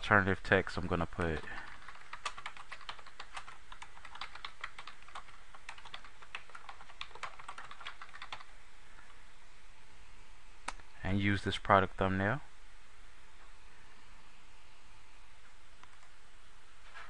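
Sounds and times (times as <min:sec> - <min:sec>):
typing on computer keyboard: 0:01.2 - 0:08.5.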